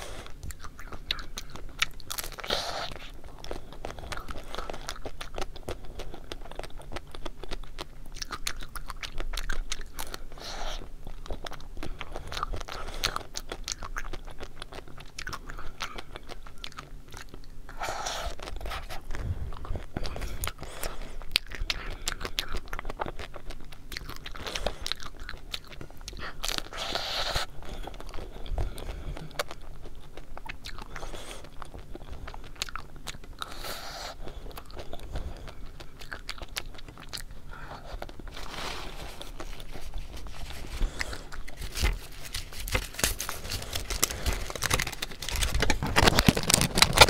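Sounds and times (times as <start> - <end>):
chewing mouth sounds: 0.0 - 47.0
chocolate shell crunching: 0.2 - 47.0.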